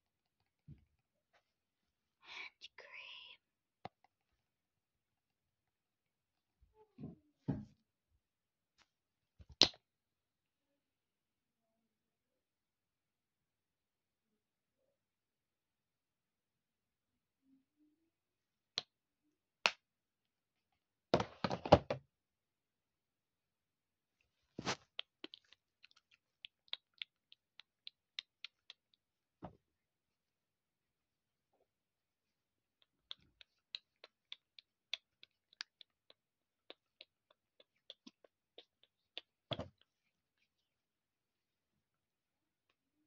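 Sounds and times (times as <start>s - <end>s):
person whispering: 2.2s - 3.5s.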